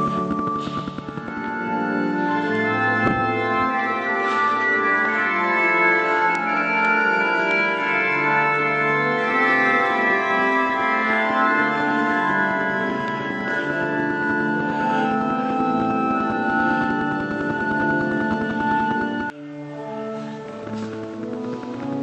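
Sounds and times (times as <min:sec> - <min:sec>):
organ chords: 0:00.0 - 0:22.0.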